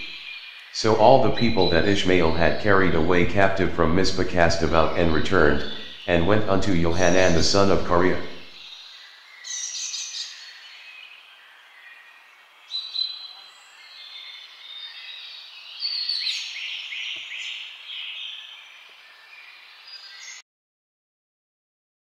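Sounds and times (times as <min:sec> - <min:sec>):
birds singing and chirping: 0:00.0 - 0:20.4
outdoor background hiss: 0:00.0 - 0:20.4.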